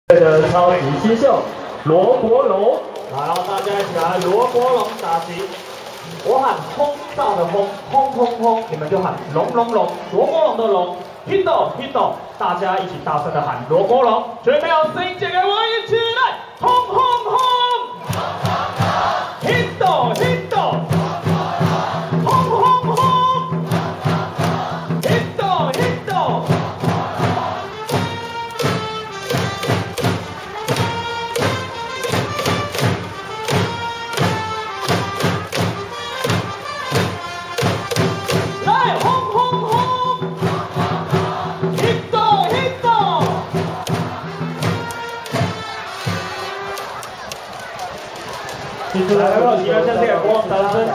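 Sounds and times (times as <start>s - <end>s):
crowd chanting and shouting: 0.1s - 50.9s
music with steady drum beat: 18.1s - 46.8s.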